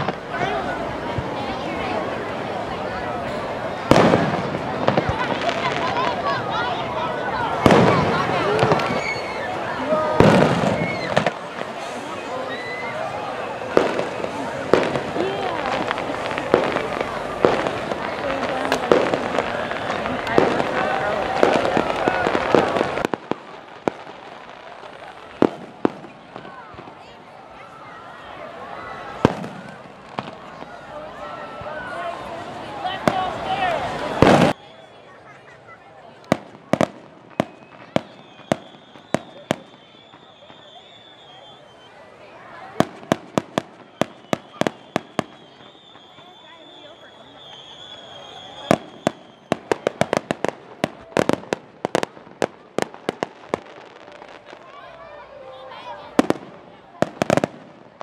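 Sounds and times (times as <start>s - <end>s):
fireworks bangs: 0.0s - 2.4s, 3.3s - 27.4s, 28.7s - 34.6s, 36.1s - 41.9s, 42.6s - 58.0s
crowd chatter: 0.0s - 58.0s.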